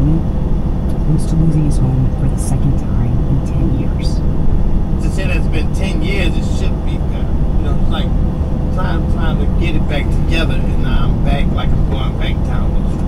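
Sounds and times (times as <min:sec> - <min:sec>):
road noise: 0:00.0 - 0:13.0
truck engine drone: 0:00.0 - 0:13.0
radio voice speaking: 0:05.0 - 0:08.1, 0:08.8 - 0:13.0.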